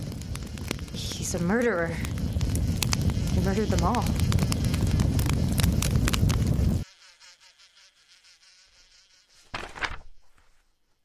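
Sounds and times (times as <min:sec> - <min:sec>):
roaring crackling fire: 0:00.0 - 0:06.8
faint buzzing: 0:00.0 - 0:11.0.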